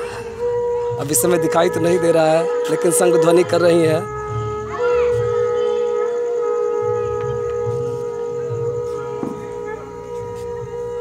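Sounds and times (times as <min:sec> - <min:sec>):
conch shells blowing: 0:00.0 - 0:11.0.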